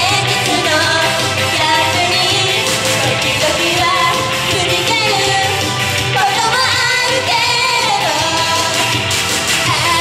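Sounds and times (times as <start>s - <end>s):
pop accompaniment: 0.0s - 10.0s
young women singing pop song: 0.0s - 10.0s.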